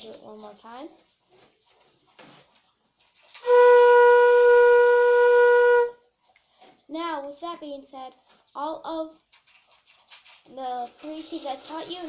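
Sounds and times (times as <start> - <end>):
flute held note: 3.4 - 6.0.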